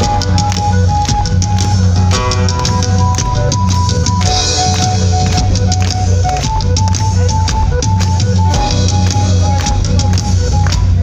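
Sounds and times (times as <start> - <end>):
drum kit beat: 0.0 - 11.0
heavy bass: 0.0 - 11.0
live band music through loudspeakers: 0.0 - 11.0.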